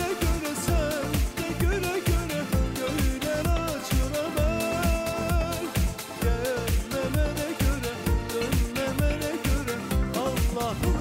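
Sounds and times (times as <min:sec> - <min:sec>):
deep kick drum beat: 0:00.0 - 0:11.0
man singing pop song with band: 0:00.0 - 0:11.0.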